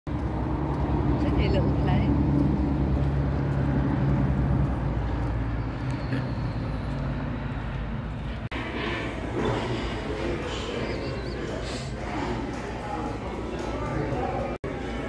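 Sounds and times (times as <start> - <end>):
jet airliner rumble overhead: 7.2 - 14.6
restaurant clatter: 8.6 - 15.0.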